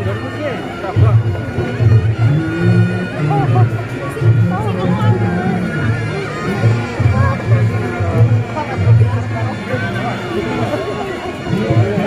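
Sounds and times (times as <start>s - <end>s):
crowd: 0.0s - 12.0s
reedy horn melody: 0.0s - 12.0s
low drum and gong beats: 0.9s - 9.7s.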